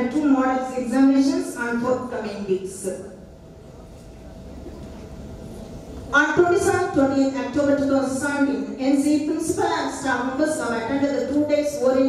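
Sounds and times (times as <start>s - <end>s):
faint steady hum: 0.0s - 12.0s
low room rumble: 0.0s - 12.0s.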